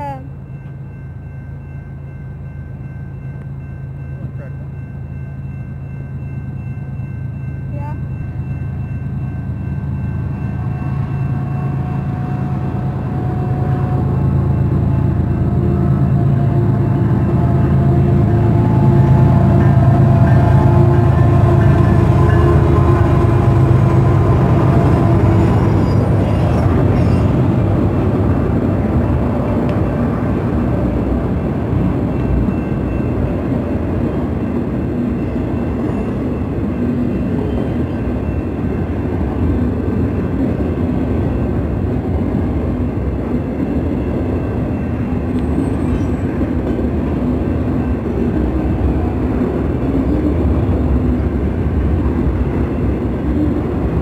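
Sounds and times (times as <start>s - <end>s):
diesel locomotive engines: 0.0s - 54.0s
train wheel and rail noise: 0.0s - 54.0s.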